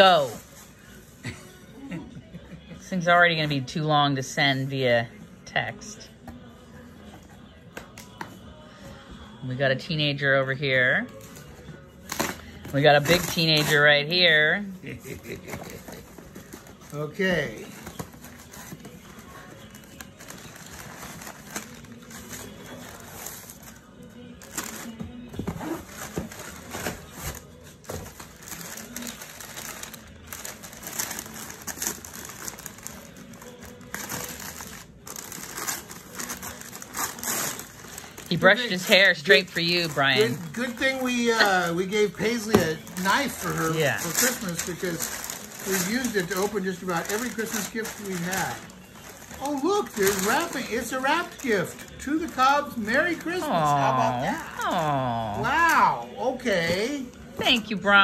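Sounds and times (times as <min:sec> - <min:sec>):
quiet background music: 0:00.0 - 0:58.0
cardboard envelope being opened: 0:24.4 - 0:55.3.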